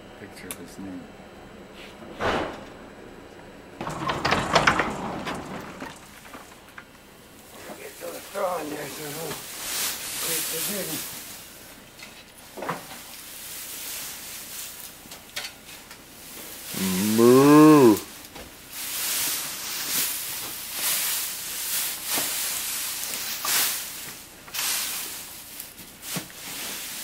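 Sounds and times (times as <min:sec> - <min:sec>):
soft rustling: 0:05.9 - 0:11.7, 0:18.0 - 0:27.0
calf mooing: 0:16.7 - 0:18.1.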